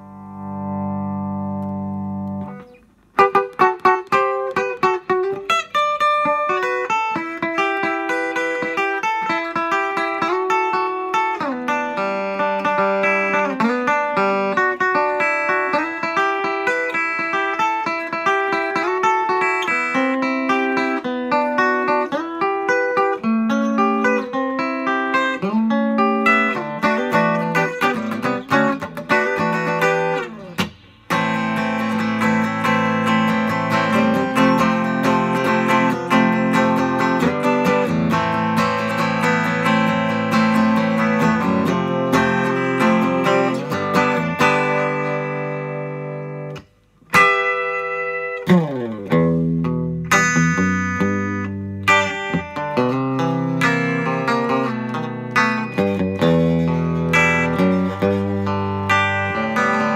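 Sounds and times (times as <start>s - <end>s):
unplugged electric guitar playing: 0.0s - 59.9s.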